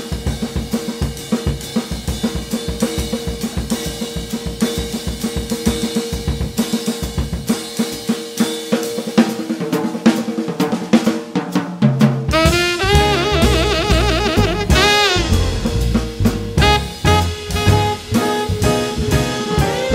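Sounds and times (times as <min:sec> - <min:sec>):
jazz drum kit solo: 0:00.0 - 0:19.9.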